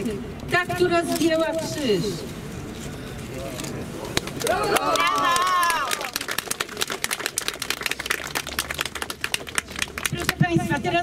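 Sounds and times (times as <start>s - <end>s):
shouted cheering: 4.4s - 6.2s
crowd applauding: 4.4s - 10.4s.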